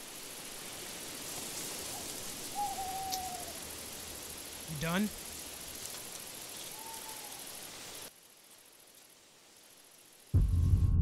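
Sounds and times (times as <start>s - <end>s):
faint night-time hiss: 0.0s - 10.9s
owl hooting: 1.9s - 3.7s, 6.6s - 7.6s.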